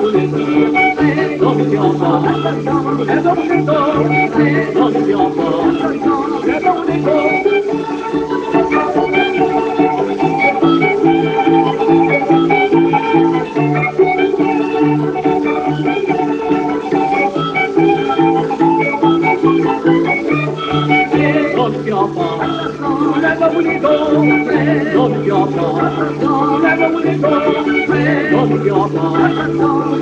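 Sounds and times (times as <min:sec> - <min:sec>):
small band playing dance tune: 0:00.0 - 0:30.0.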